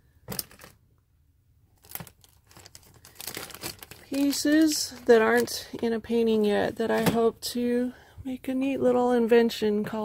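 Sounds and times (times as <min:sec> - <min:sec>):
plastic bags crinkling: 0:00.3 - 0:00.8, 0:01.7 - 0:06.2.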